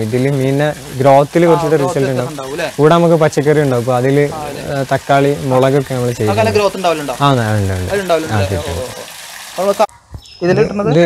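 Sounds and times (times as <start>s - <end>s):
man speaking: 0.0s - 9.1s, 10.4s - 11.0s
water splashing: 0.0s - 10.3s.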